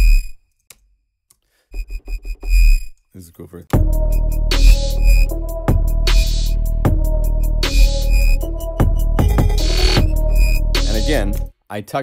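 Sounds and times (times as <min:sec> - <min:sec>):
synth bass notes: 0:03.8 - 0:11.5.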